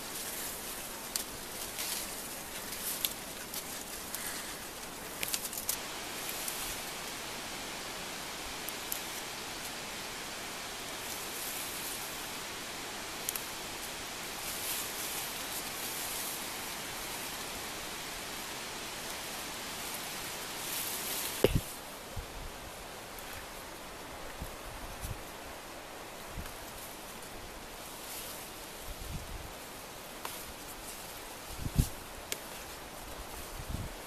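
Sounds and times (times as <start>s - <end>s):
leaves and stems rustling: 0.0s - 22.0s, 22.6s - 34.0s
steady outdoor hiss: 0.0s - 34.0s.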